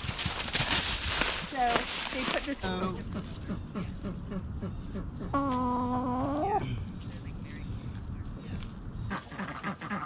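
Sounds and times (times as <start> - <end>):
hens clucking: 1.6 - 6.6, 9.1 - 10.0.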